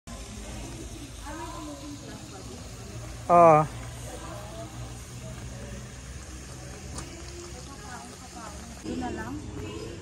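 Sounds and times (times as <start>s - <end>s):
faint voices talking: 0.1s - 10.0s.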